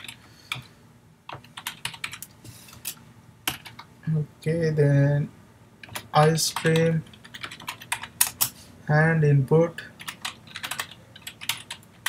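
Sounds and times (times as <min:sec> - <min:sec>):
computer keyboard keystrokes: 0:01.3 - 0:02.3, 0:05.8 - 0:08.5, 0:10.0 - 0:12.0.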